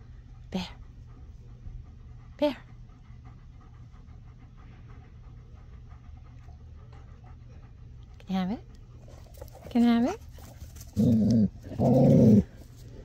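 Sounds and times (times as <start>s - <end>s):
dog panting: 0.0s - 13.0s.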